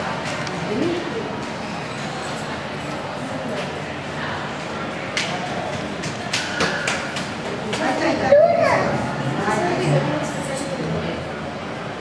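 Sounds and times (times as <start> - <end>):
children's voices: 8.0 - 10.1
child calling out loudly: 8.3 - 9.0.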